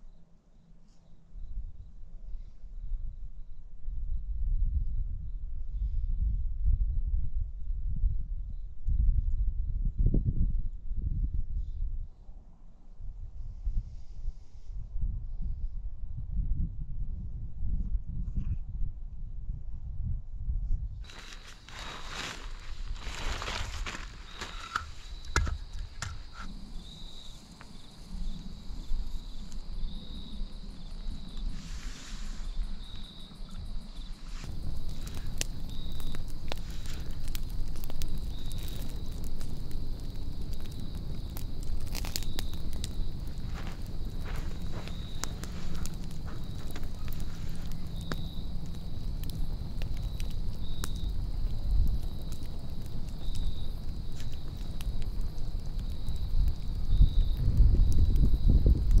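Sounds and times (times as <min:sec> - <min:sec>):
plastic bag rustling: 0:21.0 - 0:26.3
firewood handled: 0:21.0 - 0:26.6, 0:34.2 - 0:55.9
fire crackling and popping: 0:21.0 - 0:59.0.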